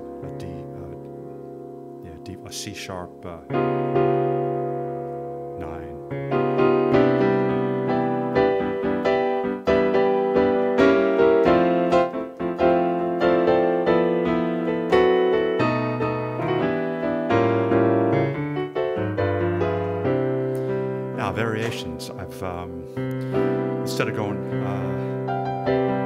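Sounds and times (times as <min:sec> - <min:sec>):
piano jazz chords: 0:00.0 - 0:26.0.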